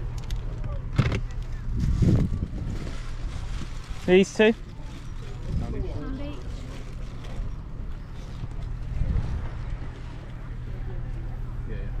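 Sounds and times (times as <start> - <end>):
faint voices: 0.0 - 12.0
wind buffeting microphone: 1.0 - 4.1, 5.1 - 10.1.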